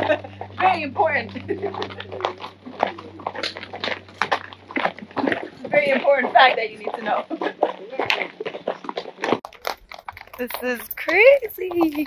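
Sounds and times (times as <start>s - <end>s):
horse hooves on stony track: 0.0s - 12.0s
steady low hum: 0.0s - 12.0s.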